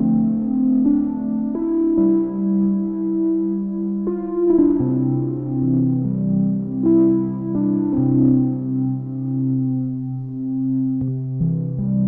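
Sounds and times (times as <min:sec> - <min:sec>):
synthesizer pad chords: 0:00.0 - 0:12.0.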